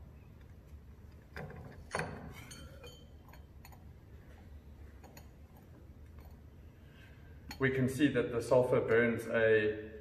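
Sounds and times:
glass and metal clinks: 1.9s - 3.9s.

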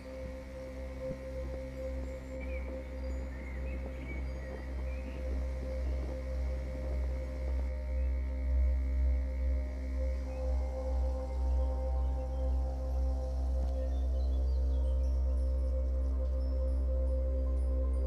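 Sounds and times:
ambient drone music: 0.0s - 18.0s.

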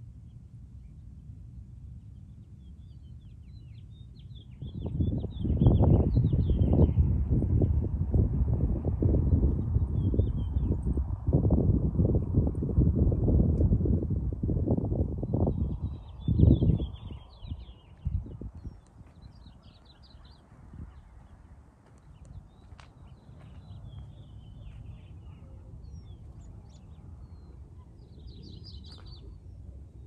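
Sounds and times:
small birds chirping: 1.9s - 8.3s, 9.2s - 11.2s, 15.2s - 30.0s
wind buffeting microphone: 2.1s - 30.0s.

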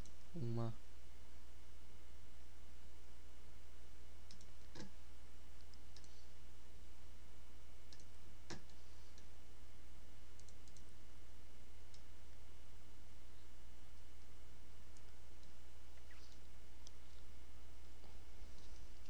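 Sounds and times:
steady low hum: 0.0s - 19.0s
mouse and keyboard clicks: 4.3s - 4.9s, 5.6s - 6.2s, 7.9s - 9.3s, 10.4s - 10.9s.

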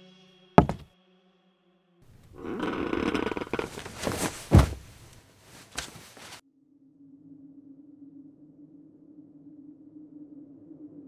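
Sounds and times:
heavy thud: 0.6s - 0.9s, 2.2s - 6.4s.

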